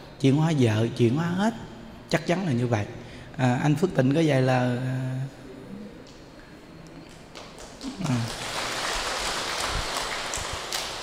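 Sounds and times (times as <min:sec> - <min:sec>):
audience applause: 0:07.3 - 0:11.0.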